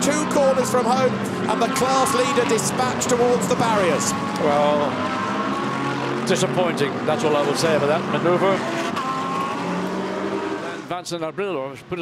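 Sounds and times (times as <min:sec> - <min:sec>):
race car engines passing: 0:00.0 - 0:11.0.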